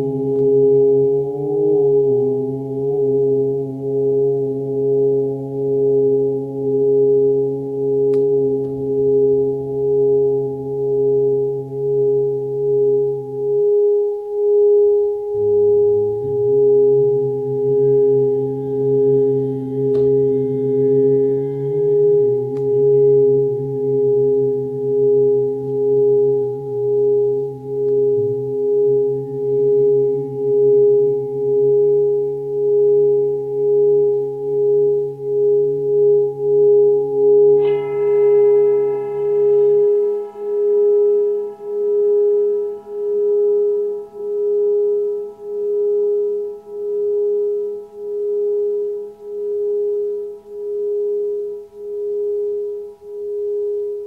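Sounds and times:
low humming tones: 0:00.0 - 0:54.0
singing bowl pulsing ringing tone: 0:00.0 - 0:54.0.

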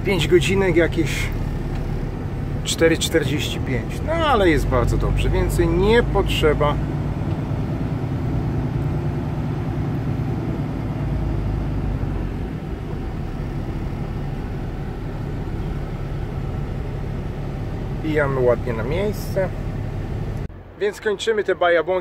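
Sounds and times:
diesel truck engine running: 0:00.0 - 0:20.8.

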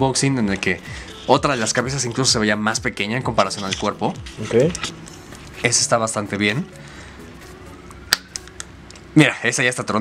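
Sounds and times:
plastic head snapping click: 0:08.1 - 0:09.0.

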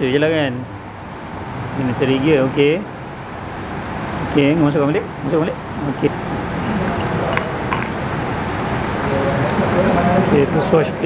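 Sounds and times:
light metallic clinks: 0:07.3 - 0:08.0.

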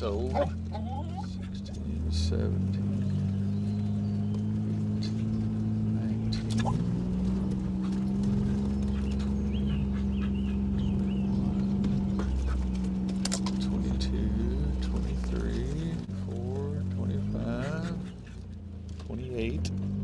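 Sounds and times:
vehicle engine humming: 0:00.0 - 0:20.0.

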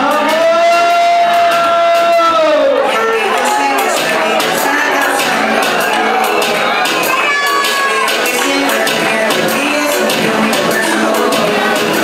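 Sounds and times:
siren-like wail in dance music: 0:00.0 - 0:08.7.

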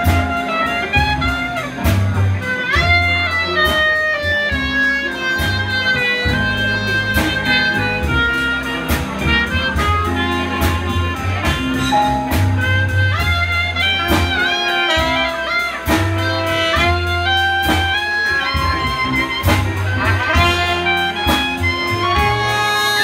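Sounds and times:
clarinet melody: 0:00.0 - 0:23.0
jazz band playing: 0:00.0 - 0:23.0.

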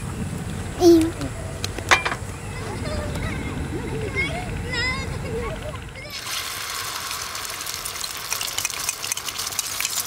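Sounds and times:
batter sizzling in a frying pan: 0:06.1 - 0:10.0.

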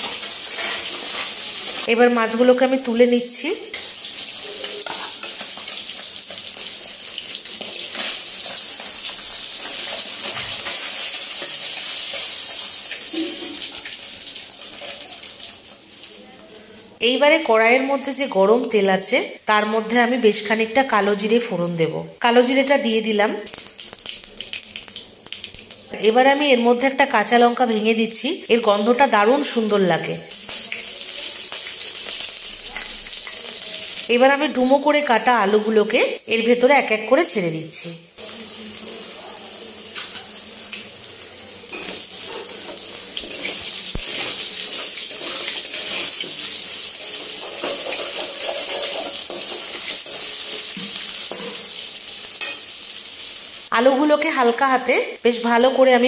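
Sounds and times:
metal spatula scraping and clicking: 0:00.0 - 0:01.9, 0:07.6 - 0:12.7, 0:41.7 - 0:46.4, 0:47.0 - 0:51.6
hot oil sizzling: 0:00.0 - 0:21.5, 0:22.2 - 0:56.0.

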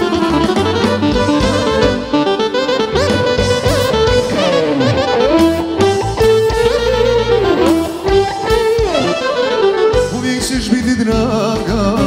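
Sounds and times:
violins playing melody: 0:00.0 - 0:10.8
steady bass line: 0:00.0 - 0:12.0.

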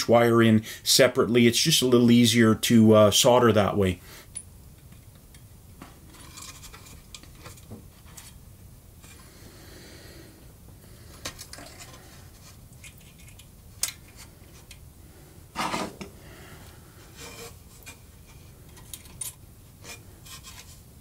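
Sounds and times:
small metal clicks and rubbing: 0:12.7 - 0:14.8, 0:18.7 - 0:19.4
metal scrape: 0:15.5 - 0:16.1, 0:17.0 - 0:18.9, 0:19.8 - 0:20.9.

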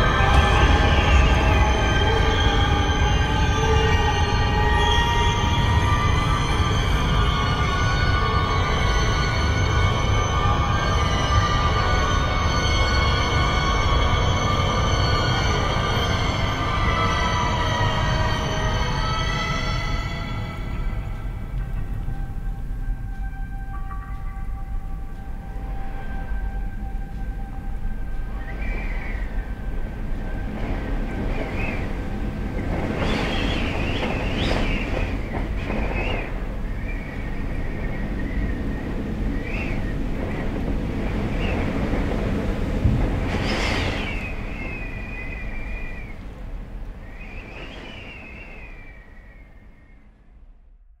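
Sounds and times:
low rumbling drone: 0:00.0 - 0:04.7
high wavering squeals: 0:00.0 - 0:50.1.

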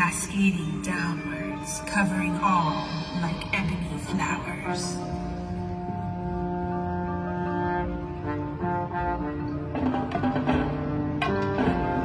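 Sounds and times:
marching band low chords: 0:00.8 - 0:12.0.

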